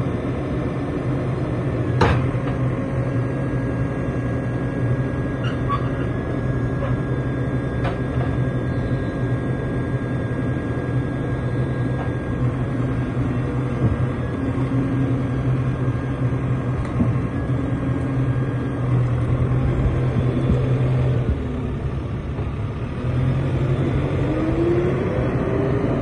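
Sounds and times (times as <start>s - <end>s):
diesel engine running: 0.0s - 26.0s
rising whine: 0.0s - 26.0s.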